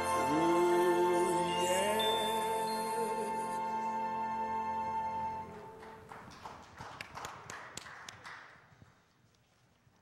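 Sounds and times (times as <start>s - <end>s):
recorded song: 0.0s - 6.2s.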